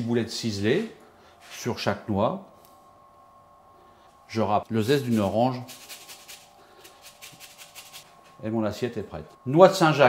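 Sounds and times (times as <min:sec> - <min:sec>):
peel scraping on grater: 0:05.0 - 0:08.1.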